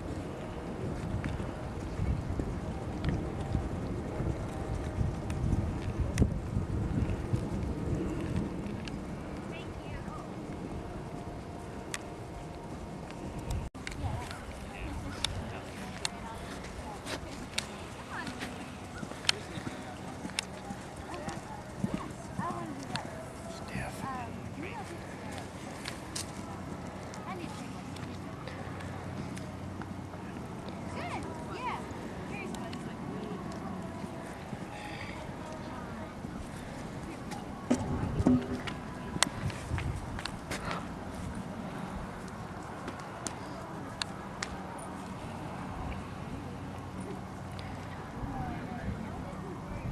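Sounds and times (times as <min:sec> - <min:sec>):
outdoor background noise: 0:00.0 - 0:49.9
people talking: 0:08.7 - 0:11.1, 0:13.6 - 0:39.6, 0:46.2 - 0:49.9.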